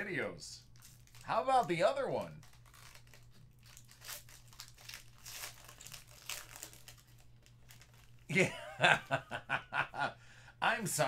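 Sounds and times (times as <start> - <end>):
foil card pack crinkling and tearing: 0.7 - 8.3.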